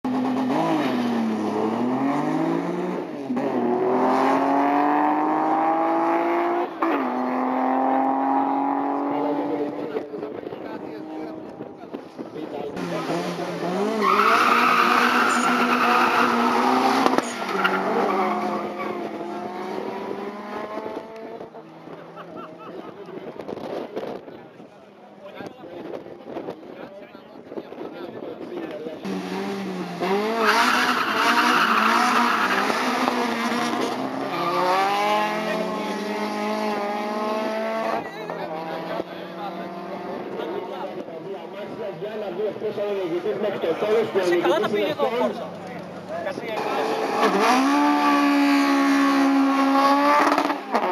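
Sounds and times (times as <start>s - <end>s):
drag-race cars accelerating: 0.1s - 24.3s, 28.5s - 50.9s.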